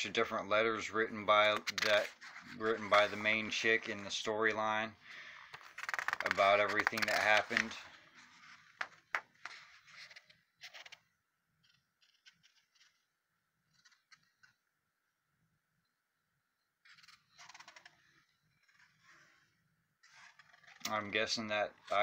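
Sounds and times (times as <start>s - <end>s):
handling rustles and clicks: 5.5s - 10.4s.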